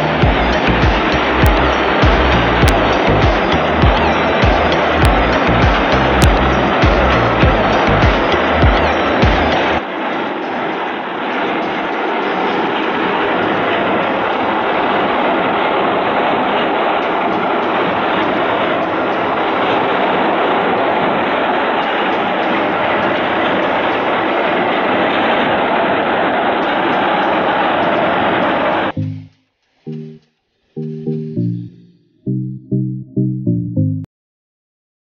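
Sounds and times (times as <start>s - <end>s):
small petrol engine running: 0.0s - 9.8s.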